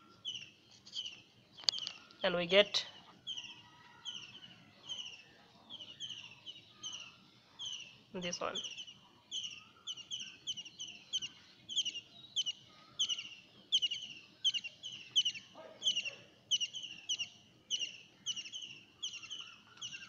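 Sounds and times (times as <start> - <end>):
small bird chirping: 0.0 - 20.0.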